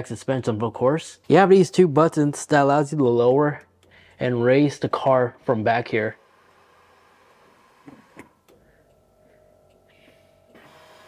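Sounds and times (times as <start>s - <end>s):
air suspension whine: 6.2s - 11.0s.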